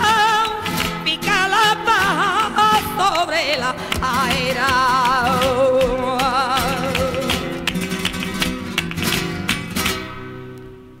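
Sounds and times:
flamenco guitar strumming: 0.0s - 11.0s.

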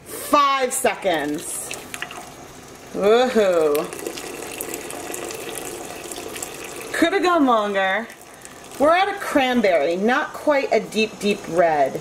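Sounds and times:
liquid trickling into a pot: 1.2s - 9.3s.

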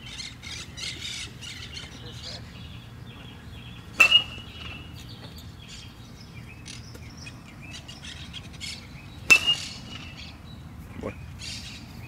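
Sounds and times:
birds chirping faintly: 0.0s - 12.0s
metal bat striking ball: 4.0s - 4.8s, 9.3s - 9.8s.

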